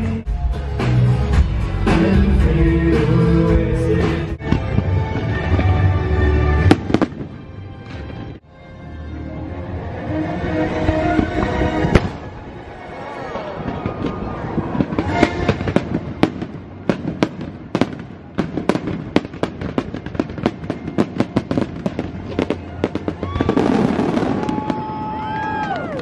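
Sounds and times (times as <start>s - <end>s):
show soundtrack music: 0.0s - 18.0s
fireworks bangs and crackles: 4.4s - 8.4s, 10.8s - 12.6s, 13.3s - 26.0s.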